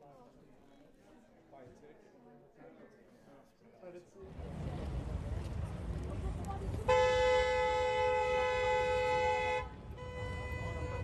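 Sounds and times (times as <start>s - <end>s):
car horn long blast: 6.9s - 11.0s.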